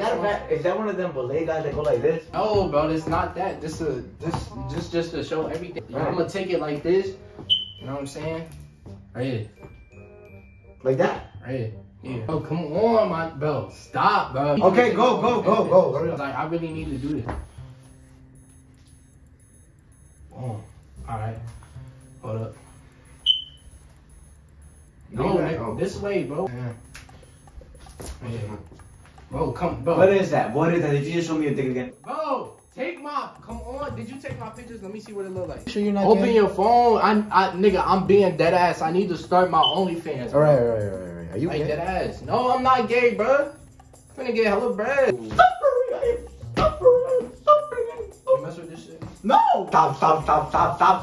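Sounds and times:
short high electronic beep: 7.5 - 7.9, 22.0 - 27.9, 39.6 - 40.0.

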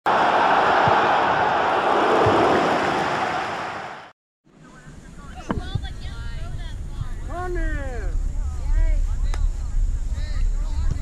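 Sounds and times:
thump: 2.2 - 2.6.

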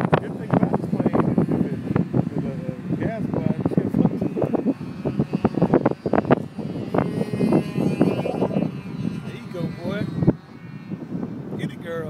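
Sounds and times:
gusty wind on microphone: 0.0 - 12.0
model airplane motor running: 0.0 - 12.0.

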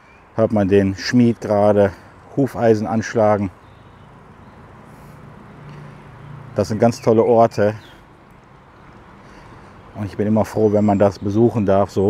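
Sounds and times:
faint road hiss: 0.0 - 12.0
vehicle engine hum: 0.4 - 12.0.

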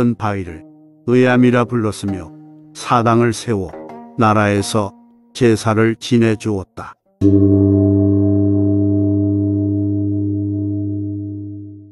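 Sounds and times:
low metal gong ringing: 7.2 - 11.9.

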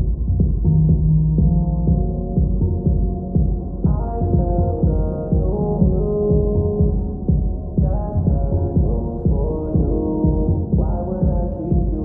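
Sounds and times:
muffled r and b song: 0.0 - 12.0.

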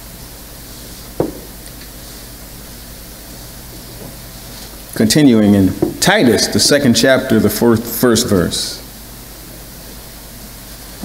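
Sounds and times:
microphone hiss and hum: 0.0 - 11.0.

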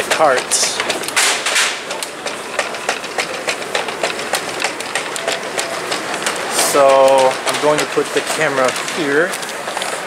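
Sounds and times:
shopping cart rattling on tile: 0.0 - 10.0.

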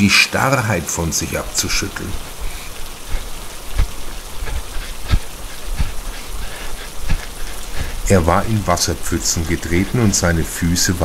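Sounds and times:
steady rain falling: 0.0 - 11.0
dull low thumps: 1.7 - 10.2.

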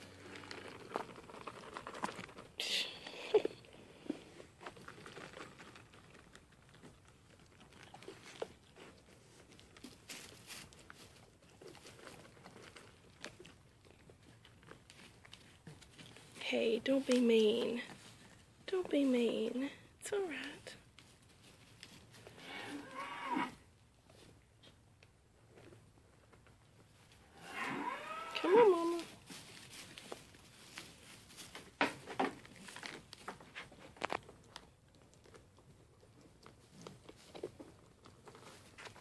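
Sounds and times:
goats rustling in straw: 8.2 - 12.4, 21.0 - 23.3, 26.9 - 34.2.

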